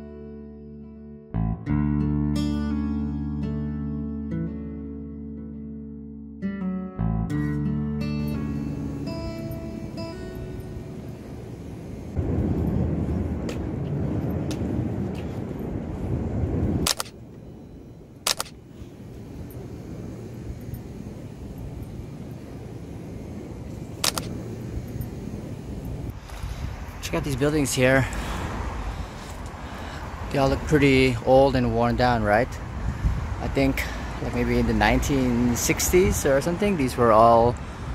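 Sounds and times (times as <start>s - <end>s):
acoustic guitar music: 0.0s - 11.8s
low hum: 7.0s - 27.1s
street ambience noise: 7.3s - 37.9s
short clicks: 16.8s - 17.2s, 18.2s - 18.6s, 24.0s - 24.3s.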